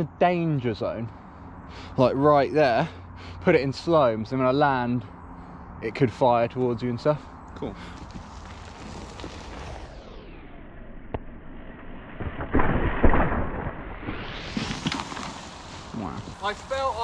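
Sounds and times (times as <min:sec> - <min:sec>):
muffled bike rushing rumble: 0:07.8 - 0:10.6.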